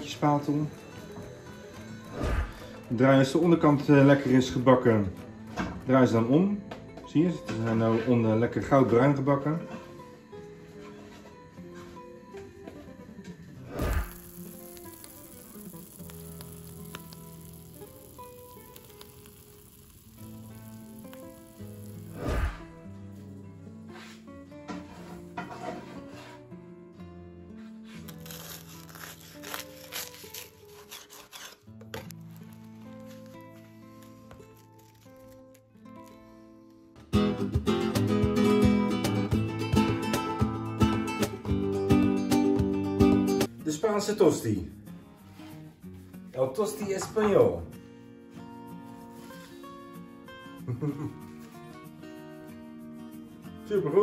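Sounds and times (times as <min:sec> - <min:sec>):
background music: 0:00.0 - 0:54.0
food sizzling in oil: 0:13.7 - 0:22.8
strummed acoustic guitar: 0:22.4 - 0:28.1, 0:35.7 - 0:54.0.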